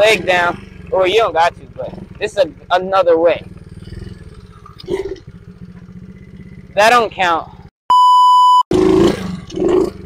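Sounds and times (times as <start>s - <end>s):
motorbike engine running: 0.0s - 7.7s.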